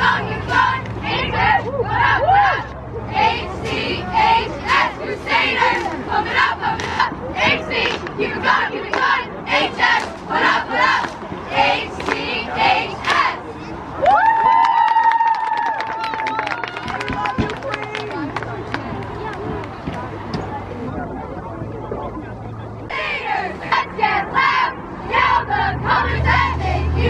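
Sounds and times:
cheerleaders shouting in unison: 0:00.0 - 0:04.8
crowd chatter: 0:00.0 - 0:27.0.

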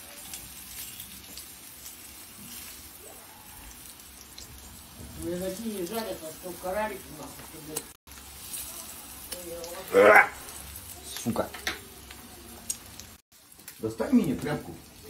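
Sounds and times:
pancakes sizzling in oil: 0:00.0 - 0:15.0.

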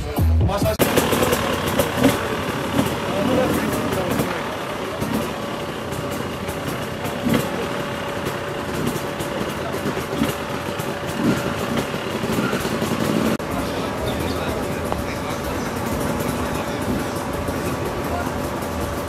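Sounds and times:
people talking: 0:00.0 - 0:19.0
motorcycle engines idling: 0:00.6 - 0:19.0.

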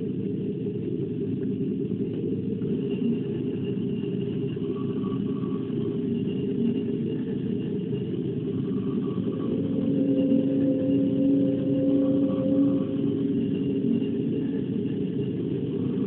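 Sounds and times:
muffled low electronic rumble: 0:00.0 - 0:16.0
steady held tones: 0:09.0 - 0:16.0.

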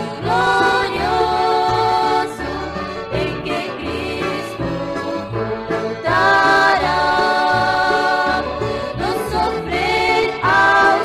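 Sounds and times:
instrumental accompaniment: 0:00.0 - 0:11.0
women's group singing a hymn: 0:00.0 - 0:11.0.

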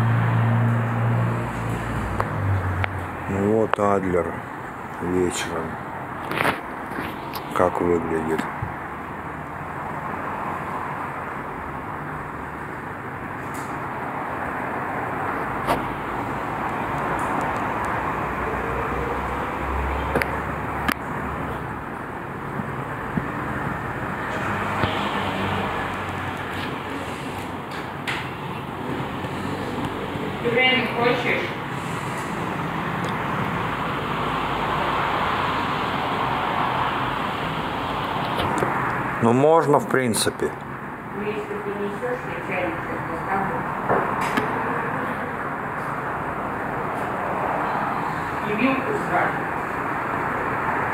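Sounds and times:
distant road traffic hum: 0:00.0 - 0:50.9
passing cars rushing: 0:00.0 - 0:50.9.

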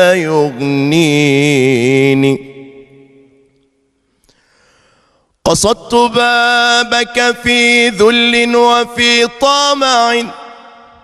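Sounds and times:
man chanting: 0:00.0 - 0:03.4, 0:05.4 - 0:10.8.

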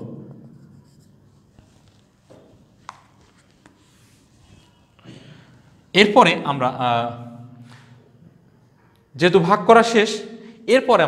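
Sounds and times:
marker pen writing on whiteboard: 0:00.0 - 0:04.3.

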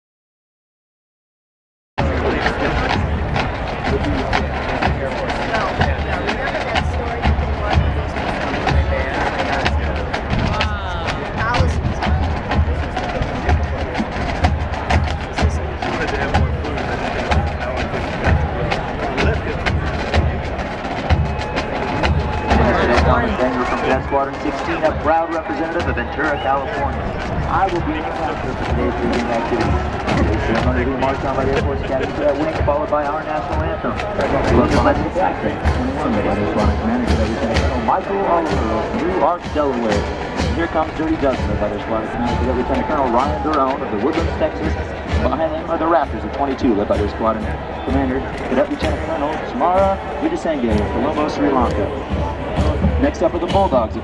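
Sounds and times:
crowd chatter: 0:02.0 - 0:54.0
marching drum line: 0:02.0 - 0:54.0
horns playing: 0:11.2 - 0:54.0.

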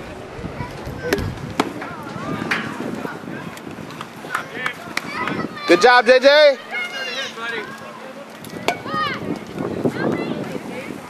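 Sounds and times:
baseball hitting the plate: 0:01.1 - 0:02.9, 0:08.6 - 0:08.9.

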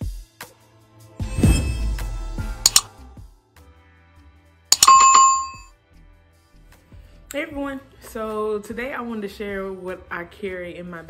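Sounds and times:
quick clicks: 0:02.7 - 0:02.9
notification bell ding: 0:04.7 - 0:05.7.

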